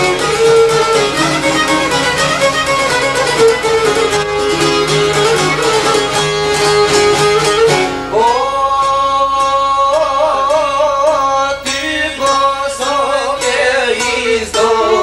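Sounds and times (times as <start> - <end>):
folk string music: 0.0 - 15.0
man singing: 8.1 - 15.0.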